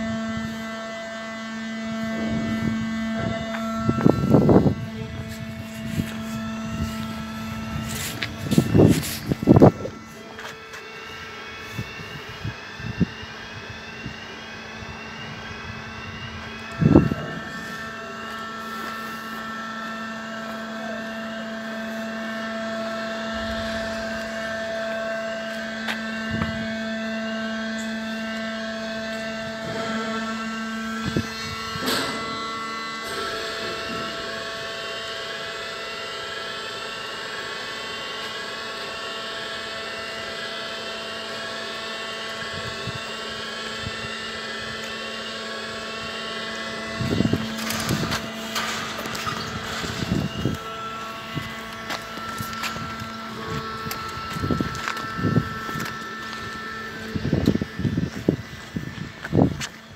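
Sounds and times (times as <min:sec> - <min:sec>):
steady machinery hum: 0:00.0 - 0:59.9
warbling warning alarm: 0:00.0 - 0:59.9.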